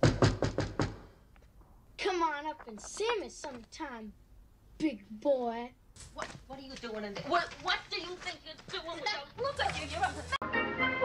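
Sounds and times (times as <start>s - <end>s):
sharp knocks: 0.0s - 1.1s.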